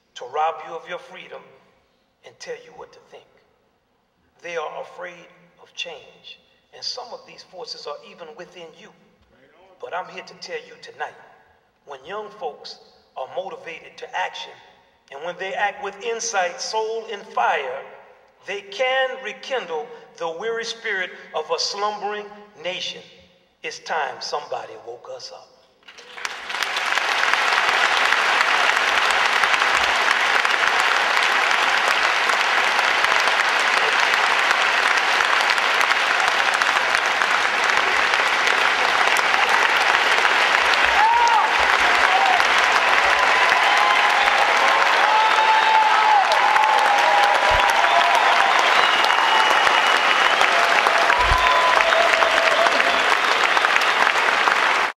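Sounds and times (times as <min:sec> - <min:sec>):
audience applauding: 0:25.9 - 0:55.0
shouts and cheers: 0:26.7 - 0:54.9.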